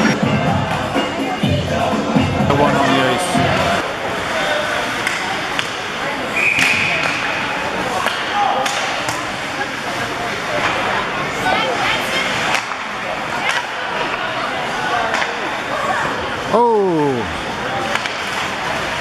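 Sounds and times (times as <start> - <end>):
crowd voices: 0.0 - 19.0
clacks of sticks and puck: 5.0 - 5.8, 6.6 - 7.3, 8.0 - 9.3, 12.3 - 14.2, 15.0 - 15.4, 17.8 - 18.6.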